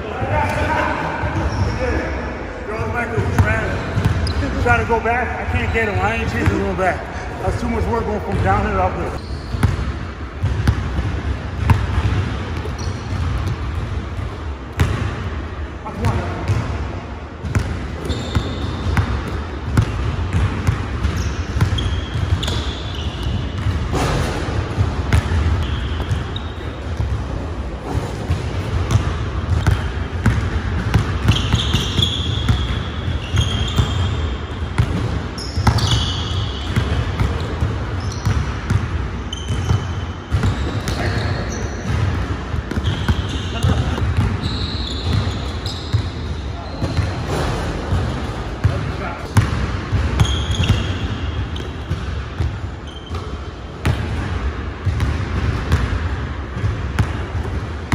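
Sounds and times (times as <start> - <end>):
sneaker squeaks: 0.4 - 2.2, 3.2 - 5.0, 7.5 - 10.8, 11.6 - 13.8, 17.4 - 27.2, 27.8 - 54.0
basketball bouncing on wooden floor: 9.6 - 13.9, 41.8 - 45.4.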